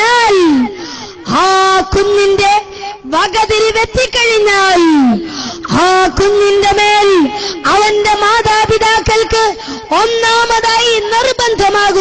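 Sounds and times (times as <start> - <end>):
boy declaiming into microphone: 0.0 - 12.0.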